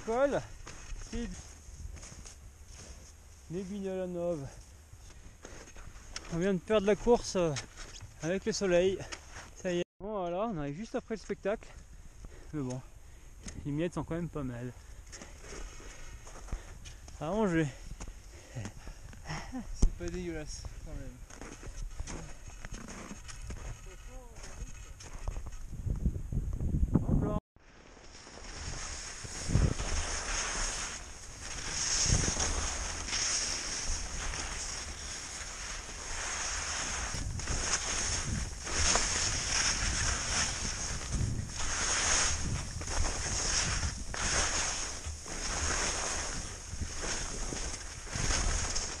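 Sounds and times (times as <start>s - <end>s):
skis scraping over snow: 0.0s - 9.8s, 20.0s - 25.6s, 27.6s - 49.0s
wind on microphone: 24.4s - 27.4s, 28.5s - 35.2s, 36.8s - 49.0s.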